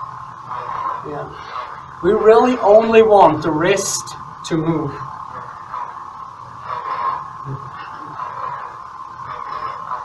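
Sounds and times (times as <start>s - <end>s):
lightsaber electronic hum: 0.0s - 10.0s.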